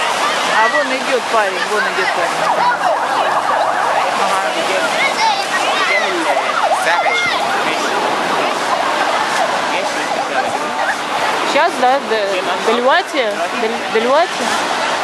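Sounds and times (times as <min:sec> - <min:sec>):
children calling: 0:00.0 - 0:15.0
crowd voices: 0:00.0 - 0:15.0.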